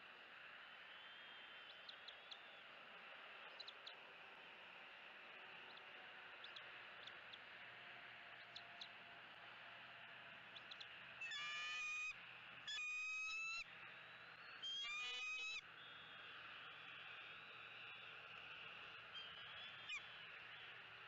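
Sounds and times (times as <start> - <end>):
steady outdoor hiss: 0.0 - 21.0
loud pitched bird calls: 10.6 - 12.1, 12.7 - 13.6, 14.6 - 15.6, 19.2 - 20.6.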